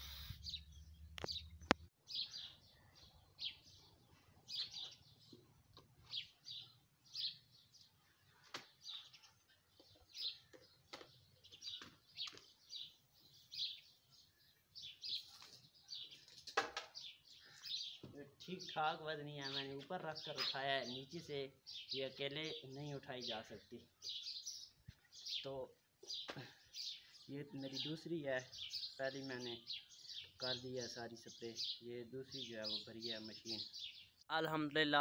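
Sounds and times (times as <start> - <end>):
small bird chirping: 0.0 - 18.8.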